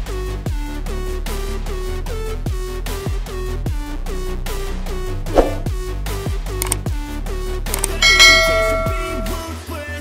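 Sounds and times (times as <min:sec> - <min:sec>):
bell-like chime: 0:07.9 - 0:09.5.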